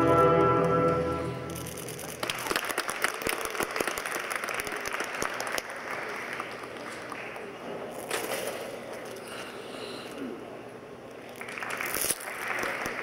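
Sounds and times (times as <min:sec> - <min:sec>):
skating program music: 0:00.0 - 0:01.8
audience applause: 0:02.1 - 0:07.8, 0:11.3 - 0:13.0.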